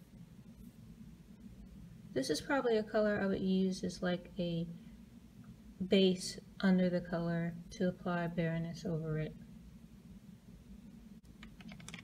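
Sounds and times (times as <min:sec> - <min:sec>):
faint low room hum: 0:00.0 - 0:12.0.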